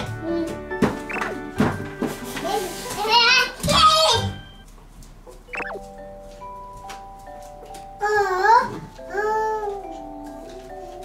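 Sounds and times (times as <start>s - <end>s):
background music: 0.0s - 3.1s.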